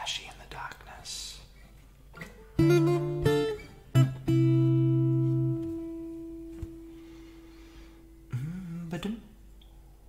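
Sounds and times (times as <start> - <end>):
acoustic guitar chord ringing: 2.6 - 8.9.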